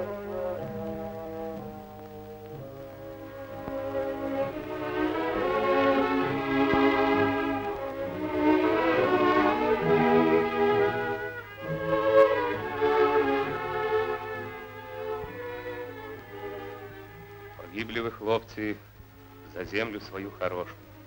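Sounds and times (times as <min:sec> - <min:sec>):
orchestral brass and strings: 0:00.0 - 0:21.0.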